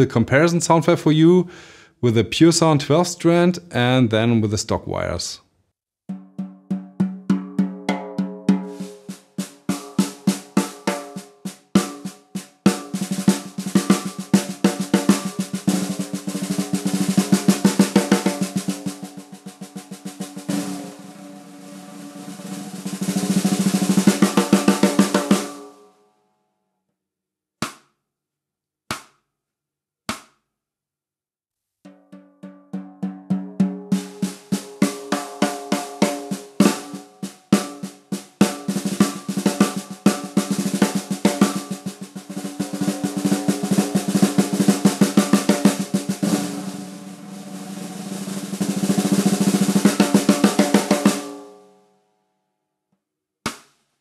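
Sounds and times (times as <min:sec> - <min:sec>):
snare drum played with sticks: 0:06.1 - 0:25.7, 0:27.6 - 0:27.9, 0:28.9 - 0:29.2, 0:30.1 - 0:30.4, 0:31.9 - 0:51.4, 0:53.5 - 0:53.8.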